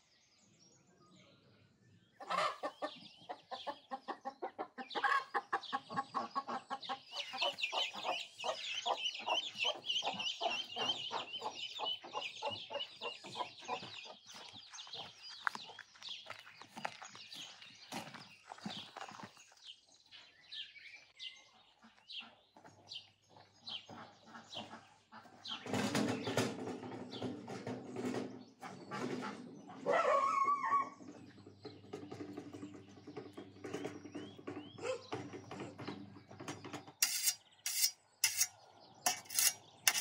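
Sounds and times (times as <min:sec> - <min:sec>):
hen clucking: 0:02.2 - 0:15.6, 0:23.7 - 0:26.5, 0:28.6 - 0:32.0
chicks peeping: 0:02.2 - 0:18.9, 0:21.3 - 0:37.6.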